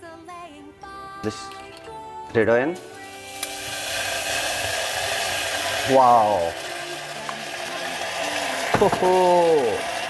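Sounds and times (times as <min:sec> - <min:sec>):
wine sizzling in hot saucepan: 0:02.8 - 0:10.0.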